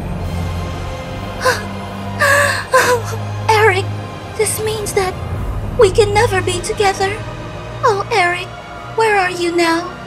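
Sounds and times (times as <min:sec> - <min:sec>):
low background music: 0:00.0 - 0:10.0
woman crying: 0:01.4 - 0:03.8.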